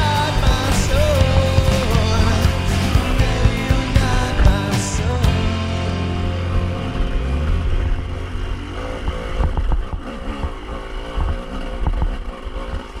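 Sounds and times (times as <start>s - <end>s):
dirt bike engine revving: 0.0s - 13.0s.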